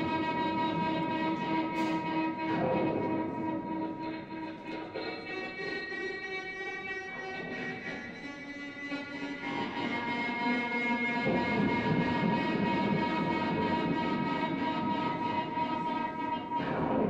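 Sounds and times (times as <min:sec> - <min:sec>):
violin bowing a high note: 0:00.0 - 0:17.0.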